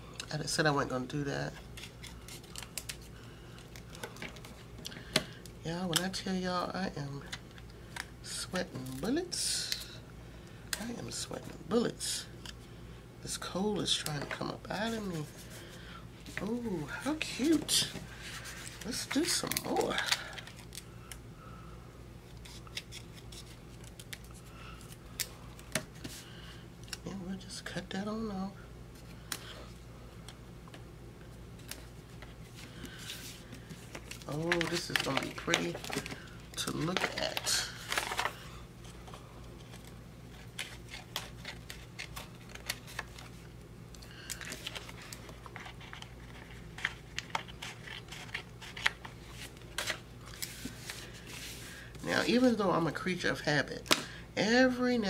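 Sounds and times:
paper rustling: 14.2 - 20.8, 31.6 - 43.4, 44.3 - 52.4.

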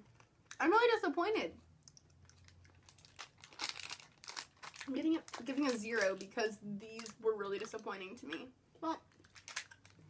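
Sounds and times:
plastic candy packet crinkling: 1.9 - 7.9, 9.1 - 10.0.

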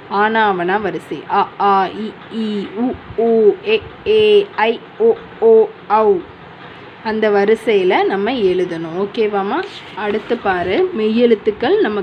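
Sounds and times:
person reciting vowel sounds: 1.4 - 6.3.

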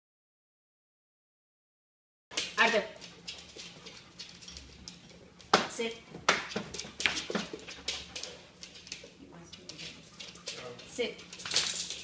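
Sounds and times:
dog claws clicking on hard floor: 2.3 - 12.0.

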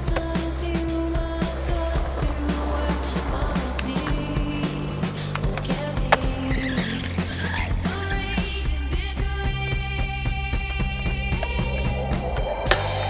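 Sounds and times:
skateboard clack: 0.0 - 8.6
skateboard wheels rolling on concrete: 0.0 - 13.0.

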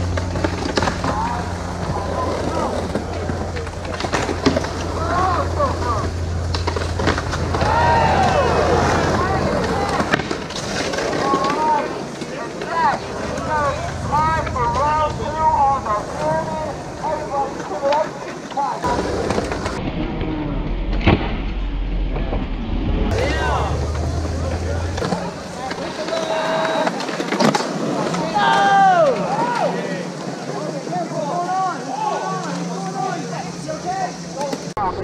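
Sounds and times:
skateboard clack: 0.0 - 19.9, 23.1 - 30.9
people talking and calling out: 0.0 - 20.8, 23.1 - 35.0
skateboard wheels rolling on concrete: 0.0 - 35.0.

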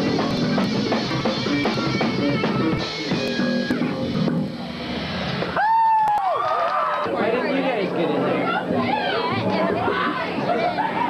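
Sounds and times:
live rock band: 0.0 - 5.6
people talking: 7.0 - 11.0.

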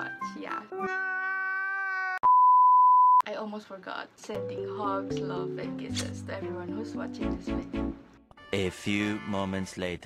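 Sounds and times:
steady test-tone beep: 2.2 - 3.2.

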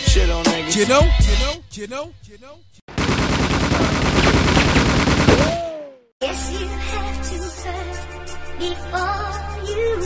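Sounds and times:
rapid automatic gunfire: 2.9 - 5.6.

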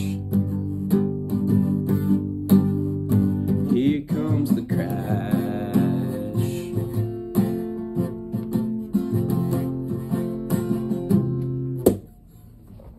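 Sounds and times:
acoustic guitar strumming: 0.0 - 12.6.

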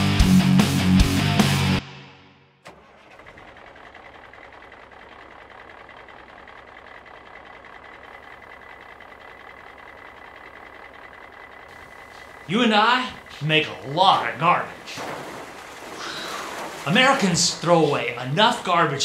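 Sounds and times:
garbage truck engine running: 0.0 - 1.8, 2.6 - 19.0
faint high whine: 7.6 - 19.0.

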